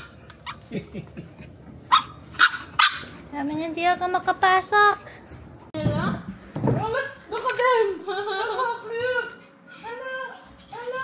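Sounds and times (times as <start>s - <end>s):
small dog barking: 1.9s - 3.2s.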